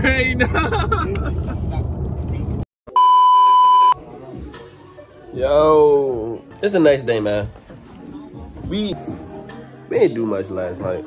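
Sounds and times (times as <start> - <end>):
road noise inside a car: 0.0 - 2.6
electronic beep: 2.9 - 4.0.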